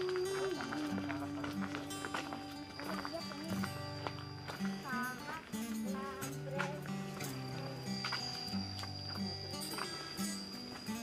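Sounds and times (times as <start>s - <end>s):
held melody note: 0.0s - 11.0s
light percussion: 0.0s - 11.0s.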